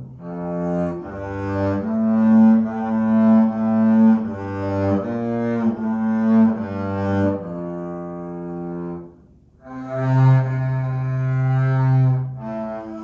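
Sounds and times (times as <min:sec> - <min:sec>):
bowed double bass melody: 0:00.0 - 0:13.0.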